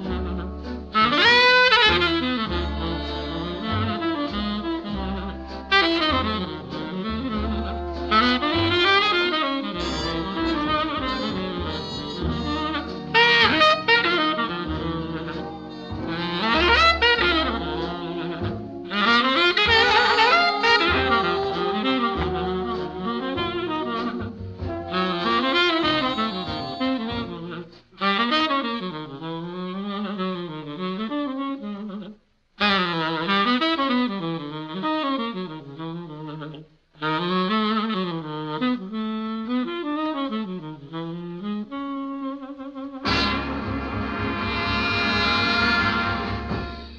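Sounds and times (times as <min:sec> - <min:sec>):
low bass accompaniment: 0:00.0 - 0:27.8, 0:42.9 - 0:46.9
tenor saxophone ballad melody: 0:00.0 - 0:46.9.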